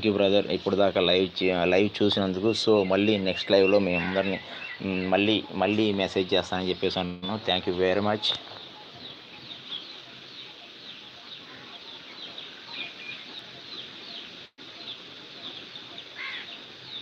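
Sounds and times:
birds chirping: 0.0s - 17.0s
lower arched bird calls: 0.0s - 17.0s
steady background hiss: 0.0s - 17.0s.

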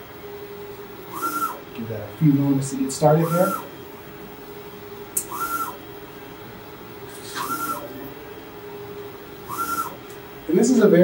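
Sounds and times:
print head carriage whine: 0.0s - 11.0s
printer hum: 0.0s - 11.0s
brief hiss: 7.1s - 7.8s.

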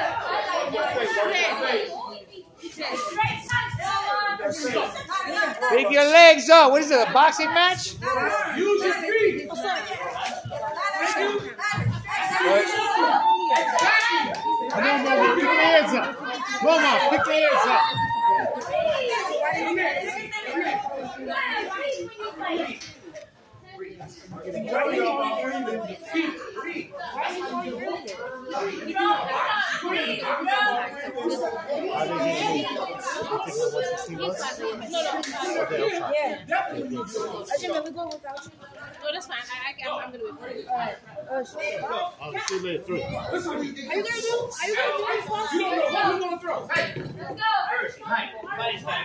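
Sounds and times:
children and adults talking: 0.0s - 49.0s.

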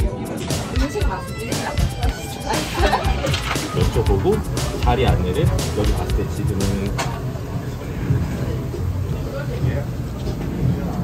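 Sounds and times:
faint background music: 0.0s - 11.0s
murmur of voices: 0.0s - 11.0s
low room rumble: 2.8s - 11.0s.

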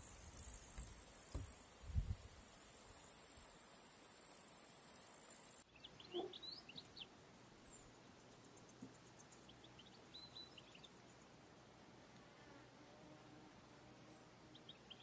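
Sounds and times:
insects shrilling: 0.0s - 6.5s.

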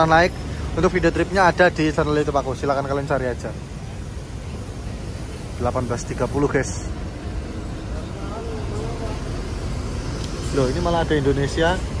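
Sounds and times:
traffic on a wet road: 0.0s - 12.0s.

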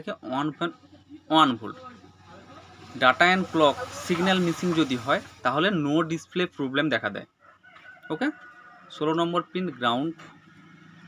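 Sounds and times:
man speaking: 0.0s - 7.2s, 9.0s - 10.2s.

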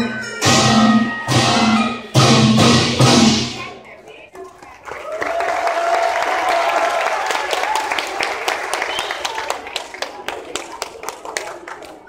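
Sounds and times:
voices: 0.0s - 5.2s
audience applauding: 4.7s - 12.0s.

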